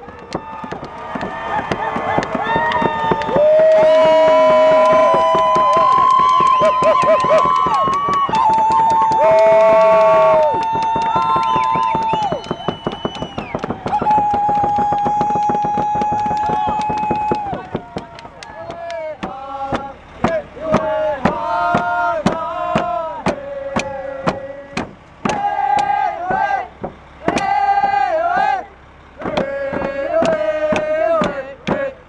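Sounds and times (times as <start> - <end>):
hand drums beaten in a roll: 0.0 - 28.5.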